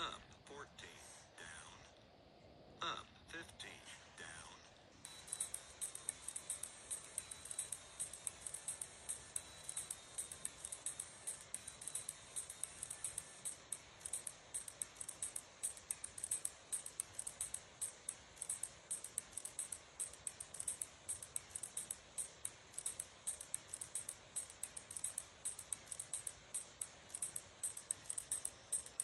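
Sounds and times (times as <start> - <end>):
bomb ticking sound effect: 5.0 - 29.0.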